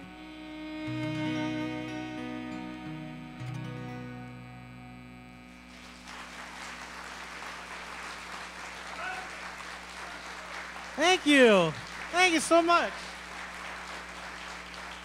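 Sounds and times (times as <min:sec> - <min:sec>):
bowed cello: 0:00.0 - 0:03.1
acoustic guitar chord: 0:00.0 - 0:07.4
audience applauding: 0:05.7 - 0:15.0.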